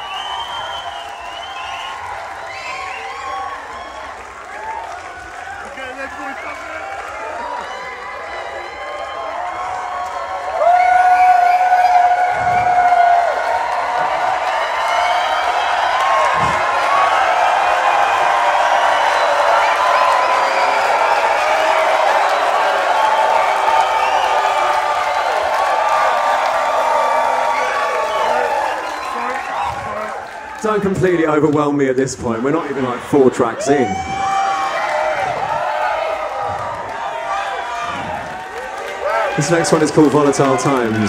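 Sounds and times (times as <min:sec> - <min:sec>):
crowd cheering and shouting: 0:00.0 - 0:41.0
long held shout: 0:05.5 - 0:30.1, 0:33.6 - 0:39.4.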